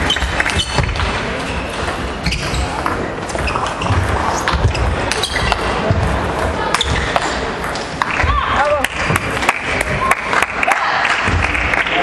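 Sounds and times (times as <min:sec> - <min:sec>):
large hall background noise: 0:00.0 - 0:12.0.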